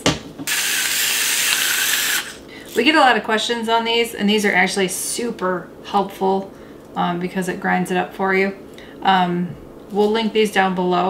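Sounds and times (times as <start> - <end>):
electric grinder motor whirring: 0.5 - 2.4.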